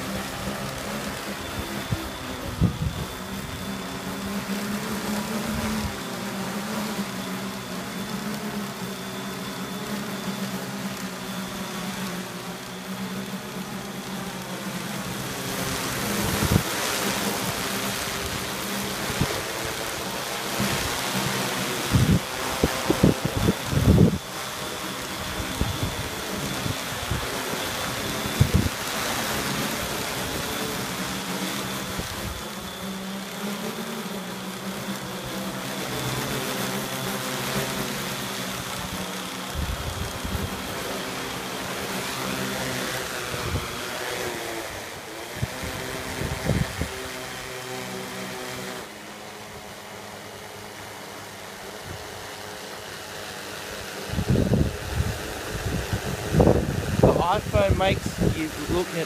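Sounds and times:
drone propellers buzzing: 0.0s - 59.0s.

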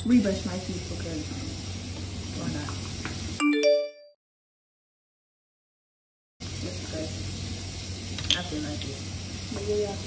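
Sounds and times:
chime ringing: 3.4s - 4.1s.

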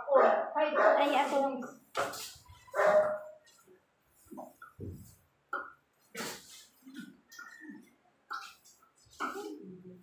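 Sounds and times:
dog barking: 0.0s - 1.1s, 2.7s - 3.4s
people talking: 0.0s - 1.8s, 9.1s - 10.0s.

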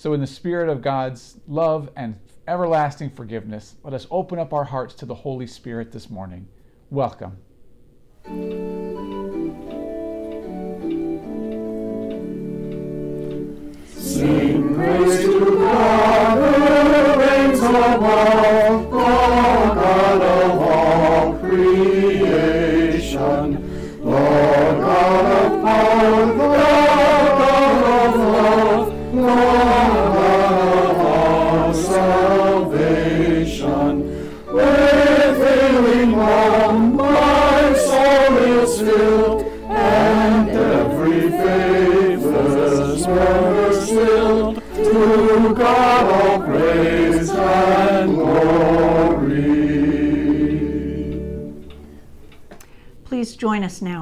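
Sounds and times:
choir singing a hymn a cappella: 8.3s - 52.0s.

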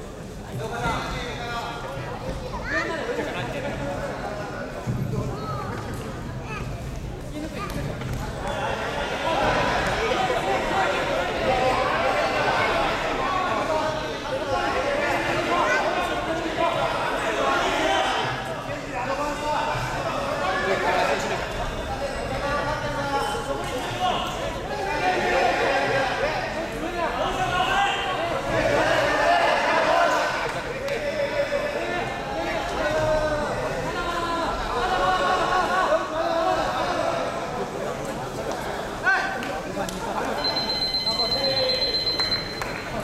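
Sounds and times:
babble of many voices: 0.0s - 43.0s.

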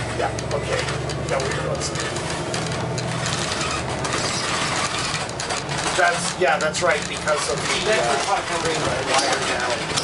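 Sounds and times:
bus road and drivetrain noise: 0.0s - 10.0s.

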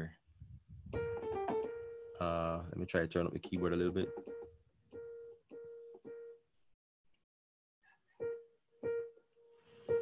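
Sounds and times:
electronic keyboard single note: 3.5s - 6.4s.

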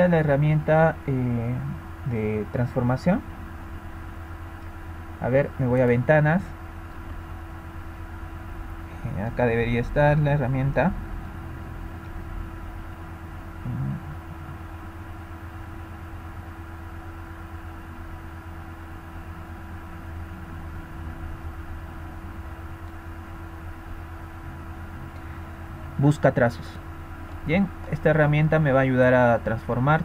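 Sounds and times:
faint constant tone: 0.0s - 30.0s
low background hum: 0.0s - 30.0s
low voice murmur: 13.6s - 14.5s.

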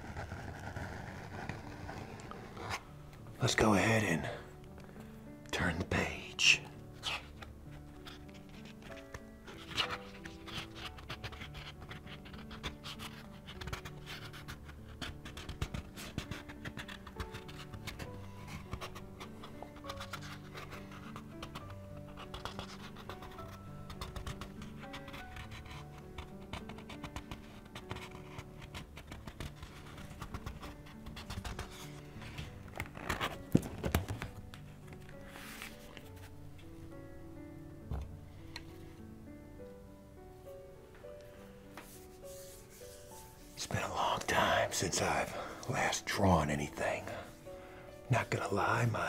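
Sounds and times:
paper pages rustling: 0.0s - 3.2s, 6.7s - 37.0s, 41.0s - 47.5s
soft background music: 0.0s - 49.0s.

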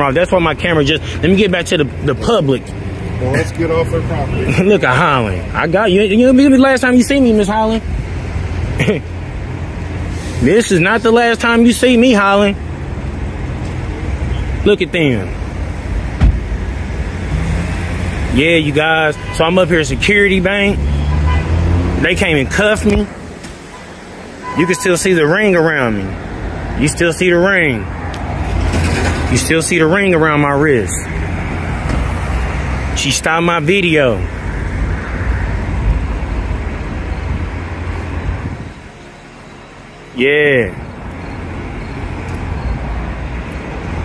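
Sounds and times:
road traffic rumble: 0.0s - 44.0s.

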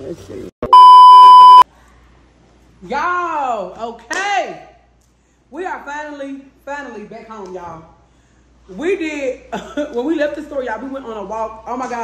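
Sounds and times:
high electronic bleep: 0.7s - 1.6s.

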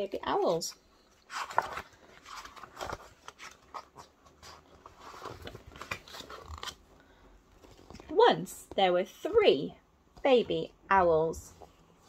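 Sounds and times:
picture book rustling and scraping: 0.3s - 6.8s.

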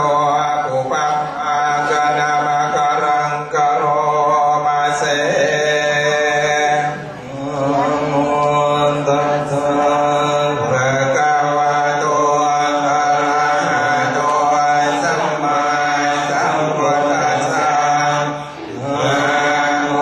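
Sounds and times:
melodic chanting: 0.0s - 20.0s.

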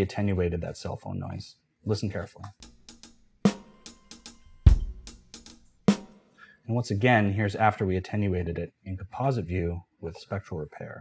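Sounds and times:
kick drum hit: 4.7s - 5.1s.

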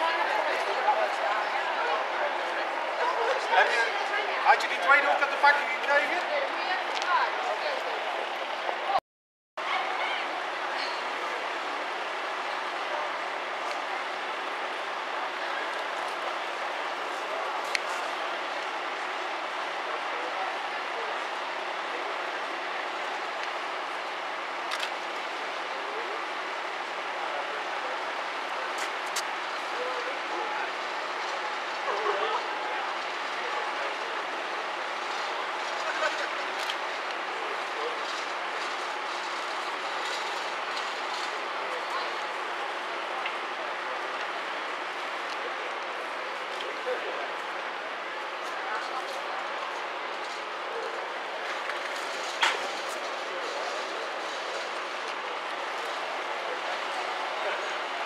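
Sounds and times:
fire engine idling: 0.0s - 9.0s, 9.7s - 58.0s.

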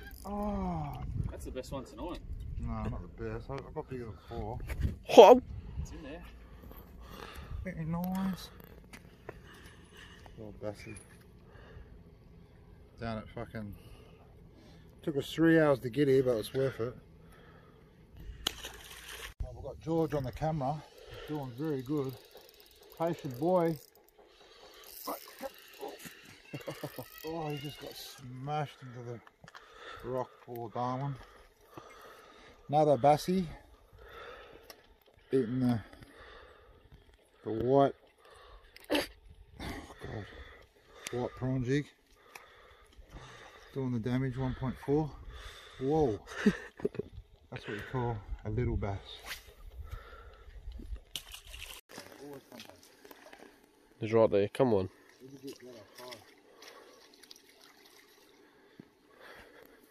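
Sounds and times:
fishing reel whirring and ticking: 0.0s - 0.7s, 20.0s - 28.9s.

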